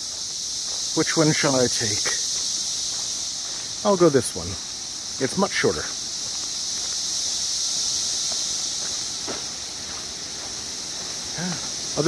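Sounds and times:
cicadas droning buzz: 0:00.0 - 0:12.0.

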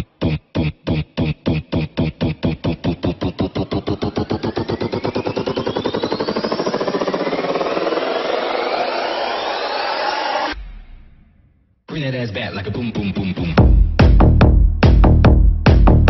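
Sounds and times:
rising sweeps: 0:02.4 - 0:10.8.

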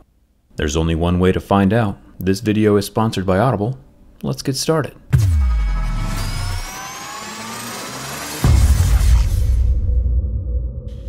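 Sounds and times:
synthesized tones rising: 0:05.1 - 0:09.9
low rumble: 0:08.4 - 0:11.0.

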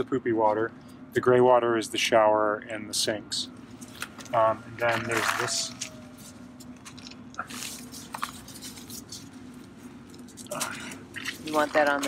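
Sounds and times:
low steady hum: 0:00.0 - 0:12.0
clicks and rubbing of gloved hands: 0:03.8 - 0:12.0.

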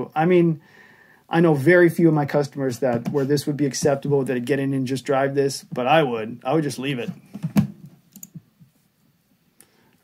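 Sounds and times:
computer clicks: 0:08.1 - 0:08.4.

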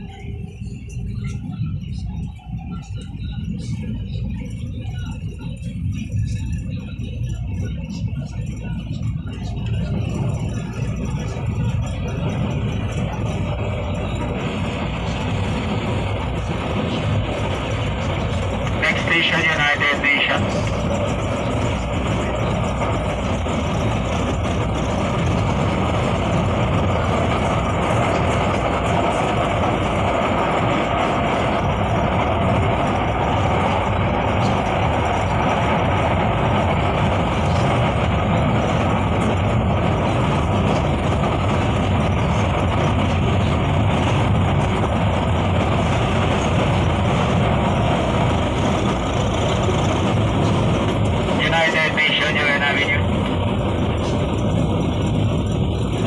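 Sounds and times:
light-rail train running: 0:00.0 - 0:56.0.

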